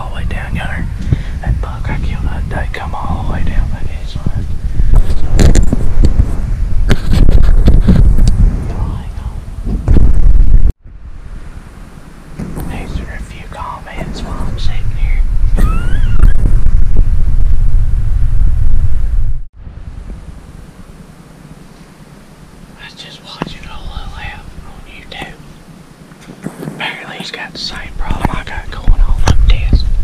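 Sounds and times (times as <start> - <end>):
man whispering: 0.0 - 4.5, 8.7 - 9.5, 12.7 - 15.3, 22.8 - 25.5, 26.8 - 30.0
camera handling rumble: 4.3 - 8.9, 26.1 - 26.9.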